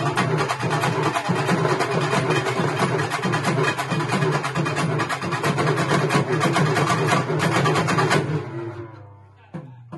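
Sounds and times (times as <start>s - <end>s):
drum ensemble playing: 0.0s - 9.9s.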